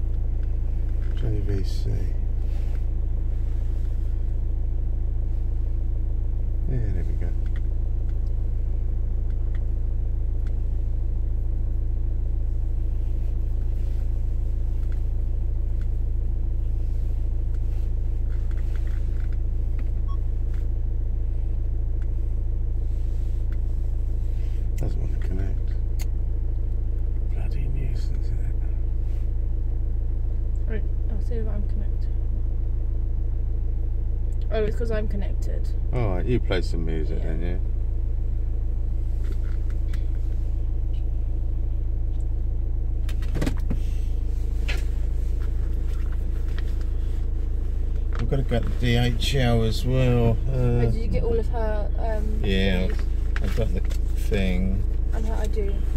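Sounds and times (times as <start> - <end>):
car engine idling: 0.0 - 55.9.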